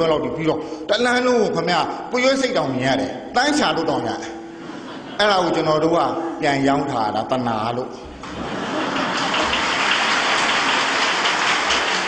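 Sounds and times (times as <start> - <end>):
audience applauding: 8.2 - 12.0.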